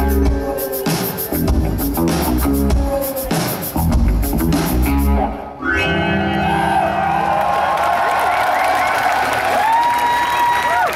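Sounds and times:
crowd cheering and whooping: 5.8 - 10.9.

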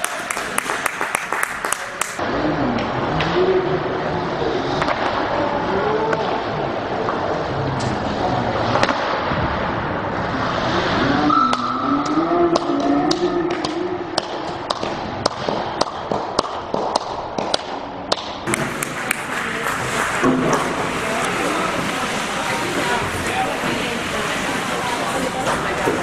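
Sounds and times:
sharp knocks and claps: 0.0 - 2.2, 12.6 - 20.8.

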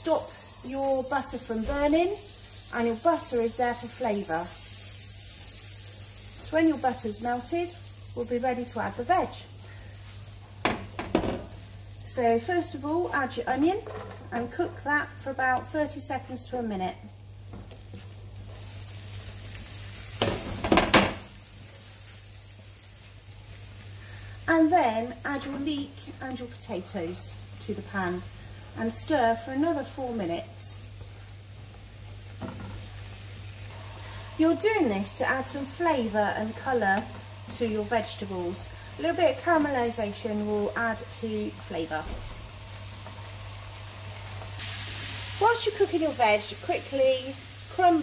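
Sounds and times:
onion sizzling in a frying pan: 0.0 - 48.0.

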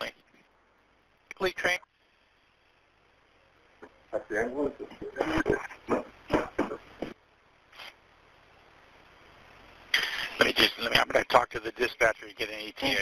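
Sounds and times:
voices over telephone line: 3.8 - 7.2.

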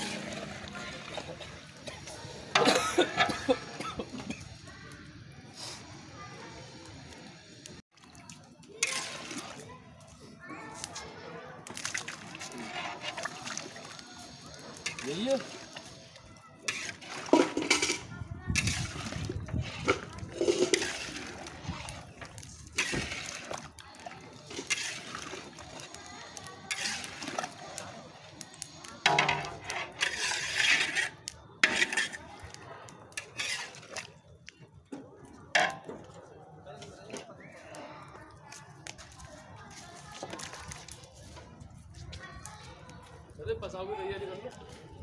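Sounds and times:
metal ladle scraping pan: 0.0 - 1.6, 8.8 - 9.6, 11.9 - 13.8, 14.8 - 16.0, 16.6 - 23.8, 24.4 - 25.9, 26.7 - 27.9, 29.0 - 32.5, 33.2 - 34.2.

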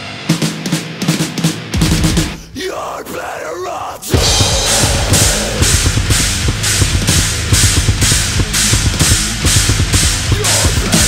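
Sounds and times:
fast bass drum strokes: 0.4 - 2.5, 4.1 - 11.0
cymbal hits: 4.1 - 11.0
low bass line: 4.2 - 11.0.

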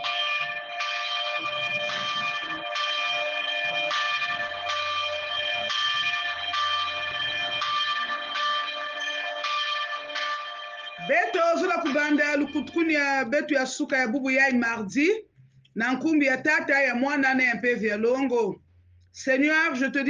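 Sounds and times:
bells ringing: 0.0 - 18.3.

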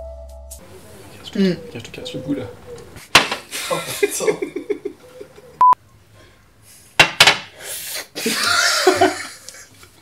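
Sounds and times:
sharp knocks: 3.1 - 3.5, 7.0 - 7.5
man laughing: 3.5 - 5.6, 8.2 - 9.7.

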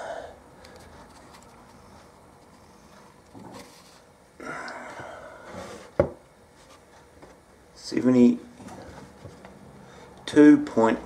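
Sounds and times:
soft rubbing and rustling: 0.8 - 4.2, 5.5 - 7.4.

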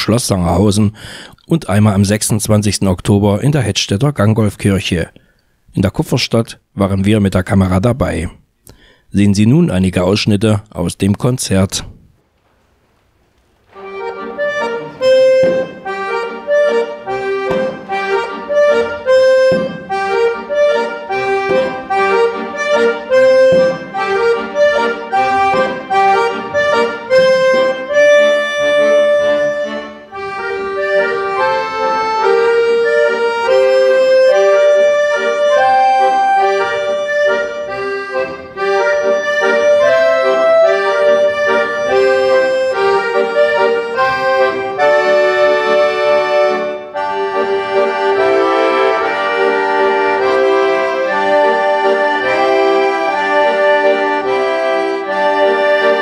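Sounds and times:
accordion ensemble playing chords: 13.7 - 56.0.

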